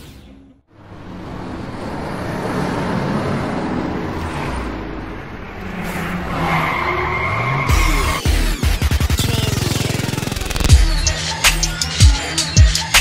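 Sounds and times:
car engine revving: 0:00.7 - 0:11.5
tires squealing: 0:00.9 - 0:10.7.

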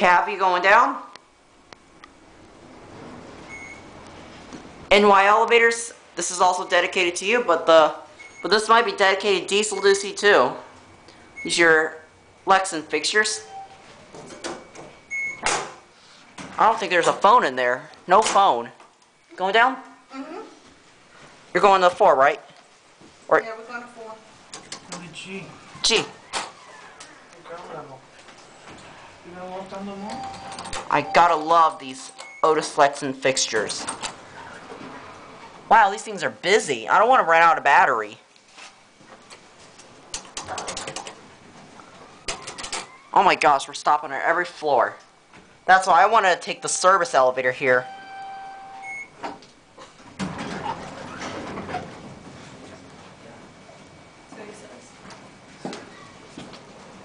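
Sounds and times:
short high beep: 0:30.1 - 0:31.4, 0:47.8 - 0:49.1.

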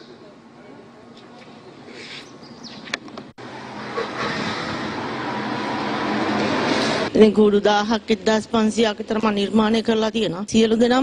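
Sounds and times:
steady rushing traffic noise: 0:00.0 - 0:10.7.

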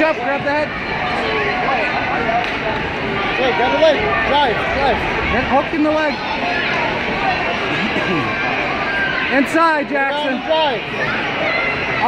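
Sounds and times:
crowd chatter in gymnasium: 0:00.0 - 0:12.0
short laugh: 0:07.7 - 0:08.4.

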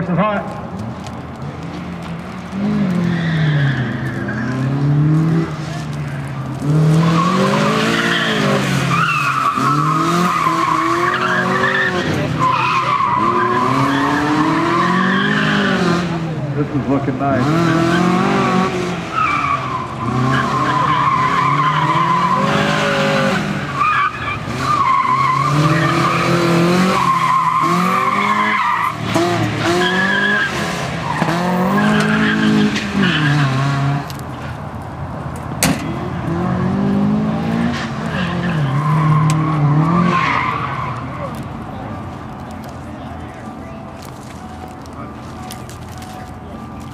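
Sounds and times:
tires squealing: 0:00.0 - 0:46.9
car engine revving: 0:01.0 - 0:34.4, 0:35.6 - 0:43.4.

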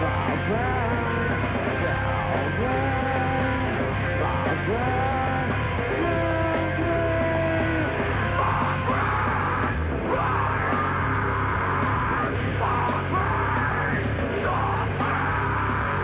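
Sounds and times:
heavy rock band playing: 0:00.0 - 0:16.0.

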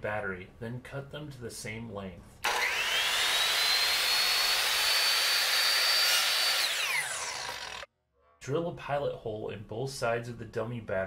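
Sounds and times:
miter saw whining: 0:02.4 - 0:07.9
saw blade cutting wooden dowel: 0:02.4 - 0:07.9.

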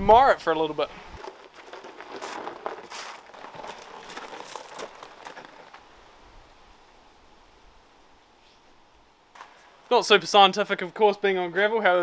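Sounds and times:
footsteps crunching on gravel: 0:00.9 - 0:05.9.

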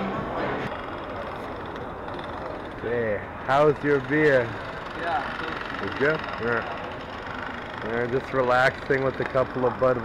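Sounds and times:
crowd murmur: 0:00.0 - 0:10.0
distant traffic hum: 0:00.0 - 0:10.0.

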